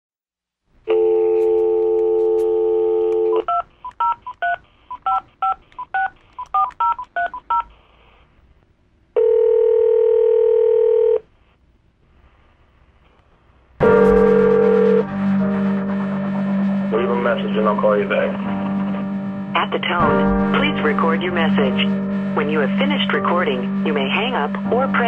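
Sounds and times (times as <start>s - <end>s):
telephone ringback tone: 0.9s - 3.5s, 9.2s - 11.2s, 13.8s - 15.1s
telephone dial tone: 0.9s - 7.6s, 9.2s - 11.2s
touch-tone keypad beeps: 3.4s - 7.6s.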